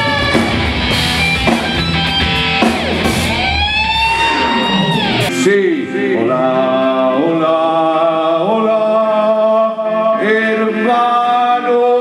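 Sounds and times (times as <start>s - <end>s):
electric guitar bending a note: 0.0s - 7.0s
lower guitar note sliding down: 0.0s - 7.0s.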